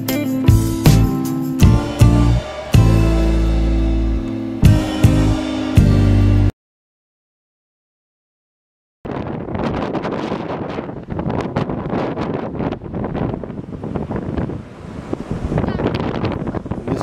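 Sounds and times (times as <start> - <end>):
wind gusting on microphone: 9.1 - 17.0.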